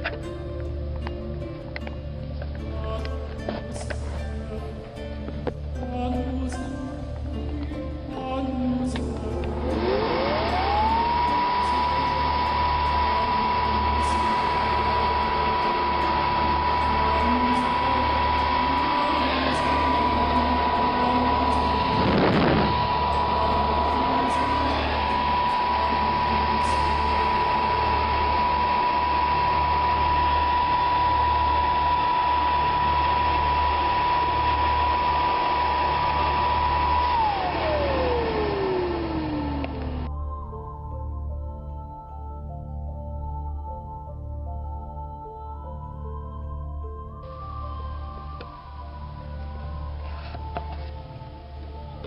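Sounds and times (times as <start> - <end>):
fan whine and air rush: 6.4 - 40.1.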